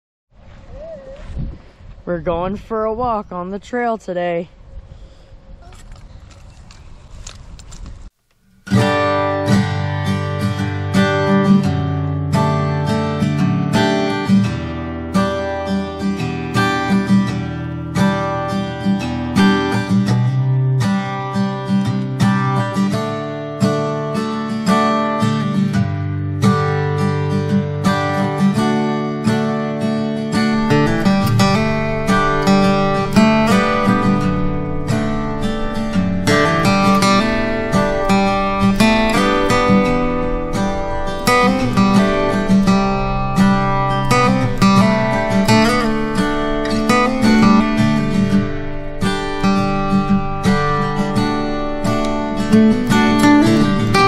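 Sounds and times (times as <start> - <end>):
acoustic guitar strumming: 8.3 - 54.0.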